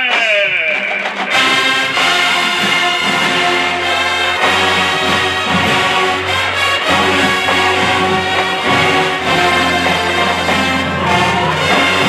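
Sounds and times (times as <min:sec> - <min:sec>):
marching band playing brass chords: 0:00.1 - 0:12.0.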